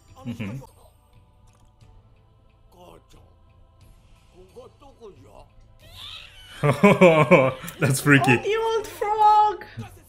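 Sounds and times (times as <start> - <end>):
soft background music: 0.0 - 10.0
cartoon character speaking: 7.8 - 8.8.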